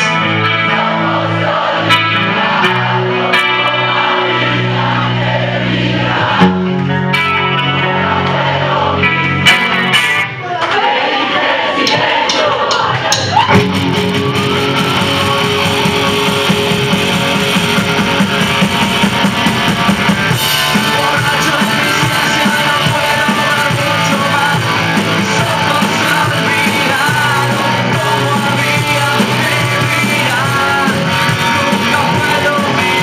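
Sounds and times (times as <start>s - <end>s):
bass guitar: 0.0s - 10.6s, 11.9s - 33.0s
electric guitars: 0.0s - 10.9s, 13.2s - 33.0s
drum kit: 9.5s - 33.0s.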